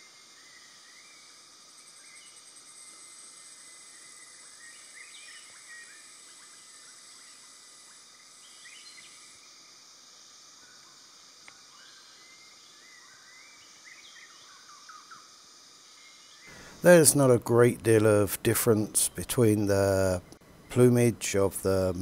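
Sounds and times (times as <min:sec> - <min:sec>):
insects hissing: 0:00.0 - 0:22.0.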